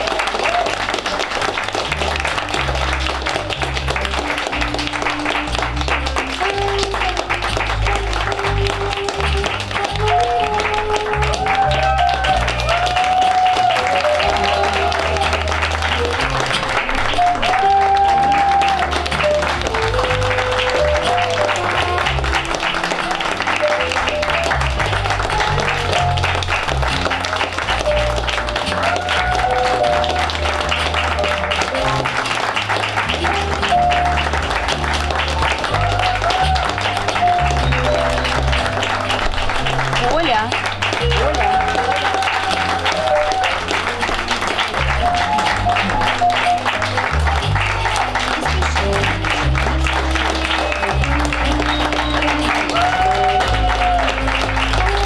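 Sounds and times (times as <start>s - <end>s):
audience applause: 0.0s - 55.0s
music with bass line and melody: 1.6s - 55.0s.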